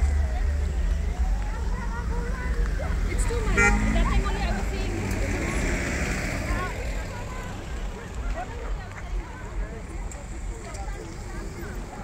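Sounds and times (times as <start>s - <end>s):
people's voices: 0.0s - 12.0s
vehicle engines passing slowly: 0.0s - 12.0s
short horn beep: 3.6s - 3.9s.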